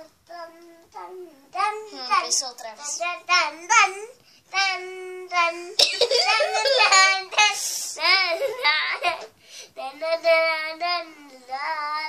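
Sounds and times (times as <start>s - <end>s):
young girl singing: 0.0s - 12.0s.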